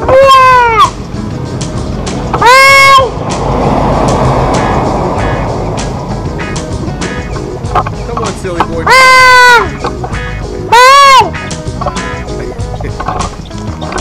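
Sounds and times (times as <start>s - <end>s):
background music: 0.0s - 14.0s
steady rushing noise: 0.8s - 8.9s
toddler calling bye: 8.8s - 9.7s.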